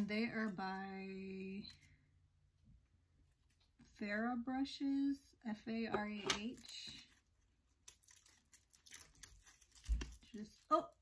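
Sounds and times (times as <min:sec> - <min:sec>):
packaging crinkling: 0:06.4 - 0:10.8.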